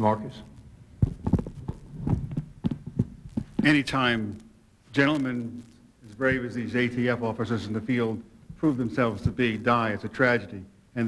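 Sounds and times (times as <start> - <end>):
thumps on a table microphone: 1.0 - 3.8, 8.5 - 9.5.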